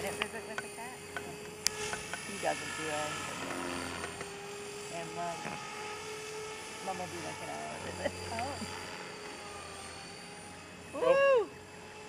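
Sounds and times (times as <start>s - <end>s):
people talking: 0.0s - 1.4s, 2.3s - 3.2s, 4.9s - 5.5s, 6.9s - 8.7s
model helicopter high whine: 0.0s - 12.0s.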